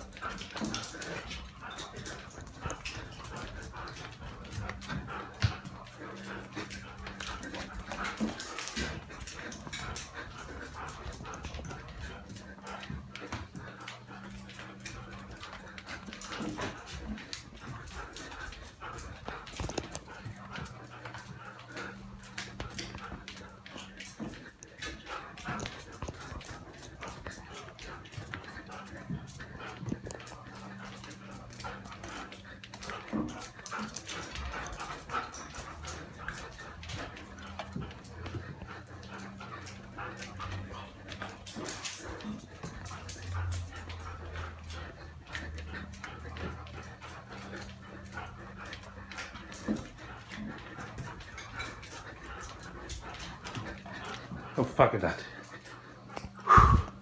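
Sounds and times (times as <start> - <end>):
dog claws clicking on floor: 0.0 - 57.0
dog vocalizing: 0.0 - 57.0.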